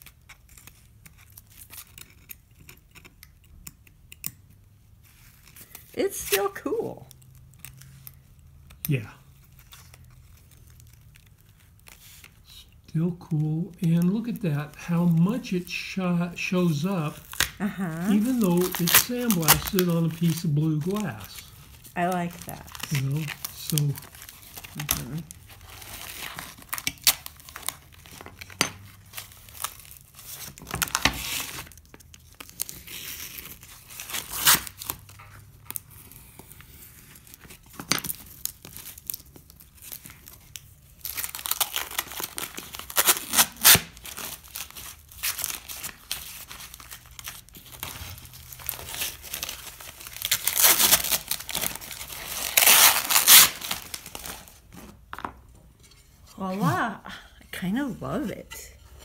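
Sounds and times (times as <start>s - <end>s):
paper backing peeling and tearing: 5.0s - 55.0s.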